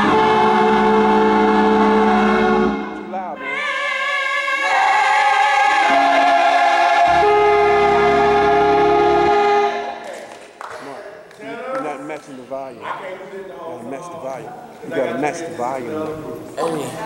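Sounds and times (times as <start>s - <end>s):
choir singing a sustained chord: 0.0s - 10.0s
people talking: 3.0s - 3.4s, 10.8s - 17.0s
low bass note: 7.1s - 9.6s.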